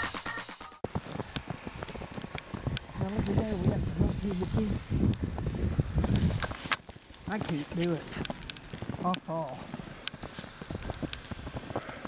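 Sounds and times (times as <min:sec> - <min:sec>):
footsteps crunching through snow: 0:00.8 - 0:12.0.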